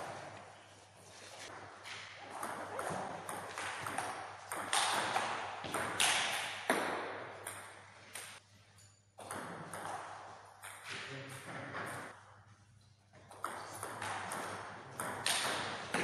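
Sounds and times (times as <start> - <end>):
table tennis ball hits: 2.2 - 8.4, 9.2 - 12.1, 13.3 - 16.0.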